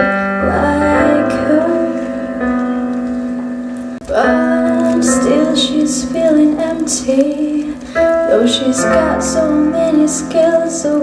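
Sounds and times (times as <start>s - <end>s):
person singing: 0.0s - 3.1s, 4.0s - 11.0s.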